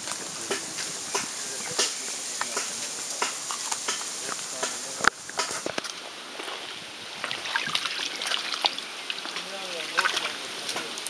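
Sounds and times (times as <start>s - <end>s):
crackly splashes: 0.0s - 11.0s
shallow water splashing: 0.1s - 11.0s.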